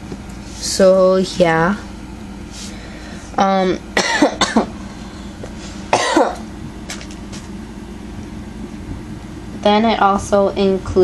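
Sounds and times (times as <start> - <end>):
low background hum: 0.0 - 11.0
person coughing: 4.0 - 4.8, 5.9 - 6.5.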